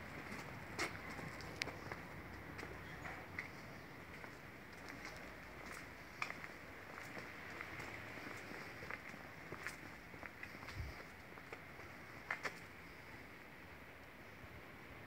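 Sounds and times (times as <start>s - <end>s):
faint outdoor hiss: 0.0s - 15.0s
footsteps on paving: 0.1s - 12.6s.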